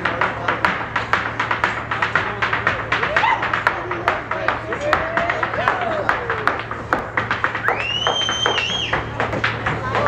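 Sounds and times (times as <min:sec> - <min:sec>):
hard shoes tapping on stage: 0:00.0 - 0:10.0
long high whistle: 0:07.7 - 0:08.9.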